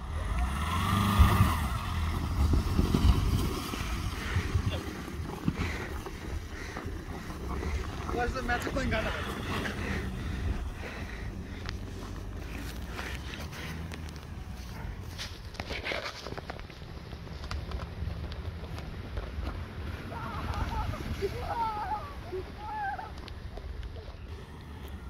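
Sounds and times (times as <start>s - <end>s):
car engine rumbling: 0.0s - 25.0s
crunching on snow: 2.1s - 21.6s.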